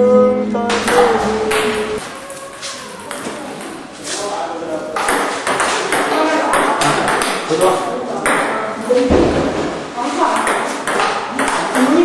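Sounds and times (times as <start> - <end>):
acoustic guitar playing: 0.0 - 2.0
people talking: 0.0 - 9.4, 10.0 - 12.0.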